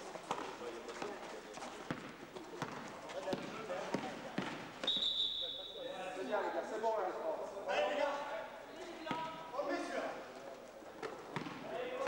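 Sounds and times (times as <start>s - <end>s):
voices in a hall: 0.0s - 12.0s
basketball bouncing on gym floor: 1.9s - 4.6s, 11.3s - 11.6s
referee whistle blast: 4.8s - 5.9s.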